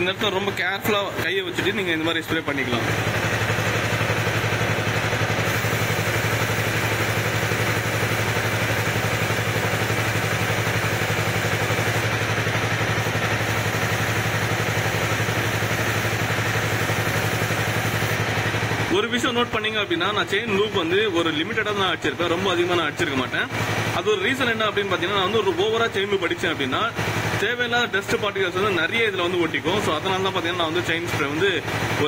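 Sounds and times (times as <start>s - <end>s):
motorcycle engine idling: 0.0s - 32.0s
aerosol spray hissing: 3.1s - 18.3s.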